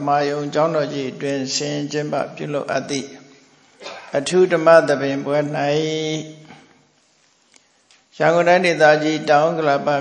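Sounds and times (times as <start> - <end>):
man chanting one steady note: 0.0 - 3.4, 4.1 - 6.6, 8.1 - 10.0.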